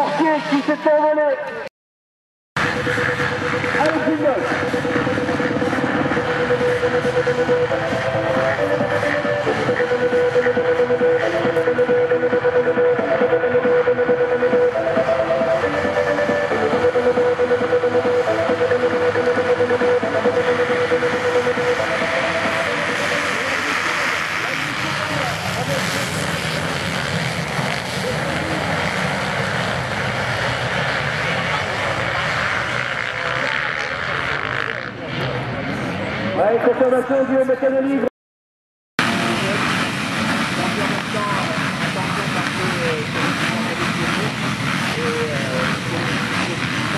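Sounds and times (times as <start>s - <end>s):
motocross bikes revving: 2.6s - 36.6s, 39.0s - 46.9s.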